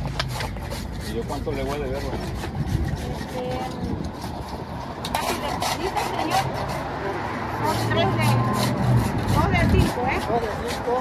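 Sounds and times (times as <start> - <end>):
street traffic rumble: 0.0 - 11.0.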